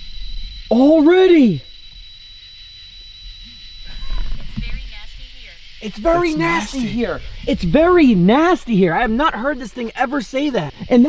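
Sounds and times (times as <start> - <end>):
steady high tone: 0.0 - 11.0
people talking: 0.7 - 1.6, 3.9 - 11.0
doll recorded voice phrase: 5.8 - 7.2.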